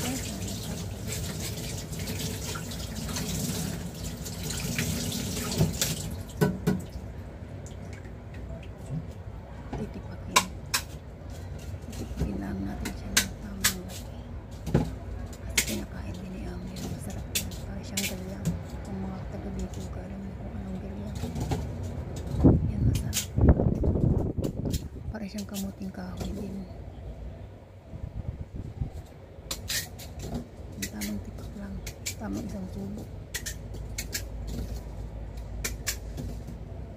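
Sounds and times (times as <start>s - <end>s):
kitchen faucet running: 0.0s - 6.3s.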